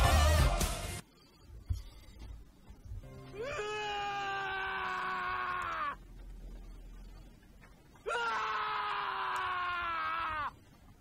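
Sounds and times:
man screaming: 3.4s - 6.0s, 8.0s - 10.5s.

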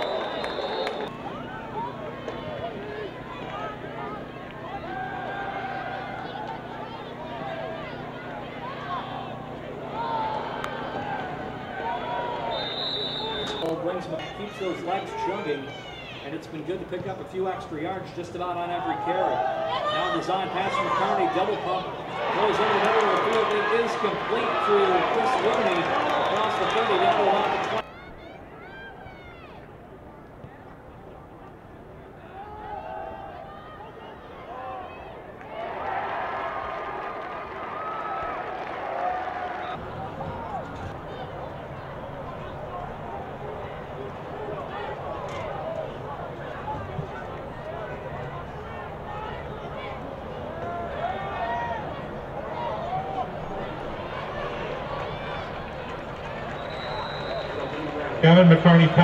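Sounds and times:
short high whistle: 0.0s - 1.1s, 12.5s - 13.7s, 56.6s - 57.9s
crowd shouting: 0.0s - 16.4s, 18.5s - 29.7s, 32.2s - 59.0s.

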